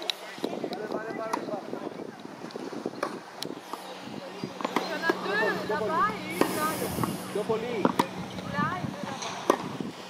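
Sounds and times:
wind buffeting microphone: 0.0 - 10.0
tennis racket hitting ball: 7.8 - 8.2.

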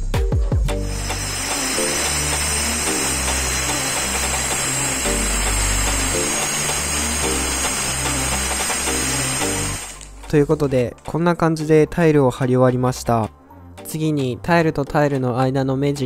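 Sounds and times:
background music with bass: 0.0 - 16.0
angle grinder cutting tile: 0.8 - 10.3.

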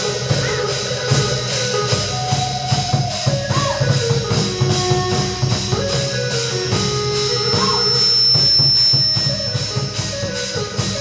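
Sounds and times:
rhythmic percussion: 0.0 - 11.0
steady high-pitched tone: 6.4 - 10.2.

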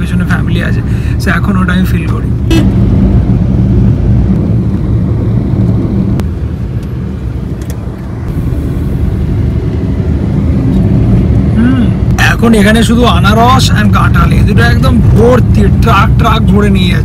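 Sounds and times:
car engine hum: 0.0 - 17.0
road and tyre noise: 0.0 - 17.0.

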